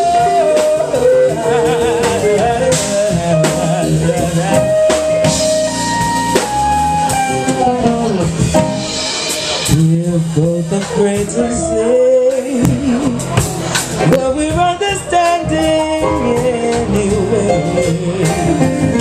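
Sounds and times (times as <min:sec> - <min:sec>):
live band playing: 0:00.0 - 0:19.0.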